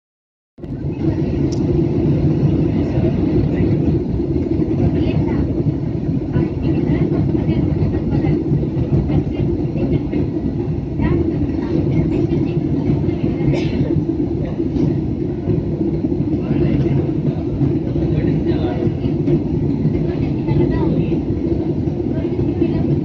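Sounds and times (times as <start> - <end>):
faint voices: 0.6 - 23.0
jet engine and airflow roar: 0.6 - 23.0.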